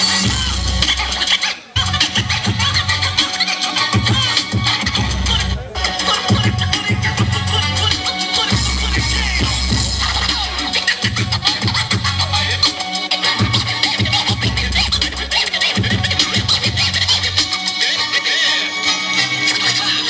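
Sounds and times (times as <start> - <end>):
record scratching: 0.0 - 17.8
beat with heavy bass line: 0.0 - 20.0.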